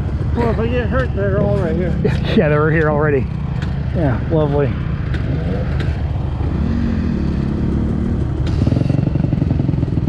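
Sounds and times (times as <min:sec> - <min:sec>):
dirt bike engine running: 0:00.0 - 0:10.0.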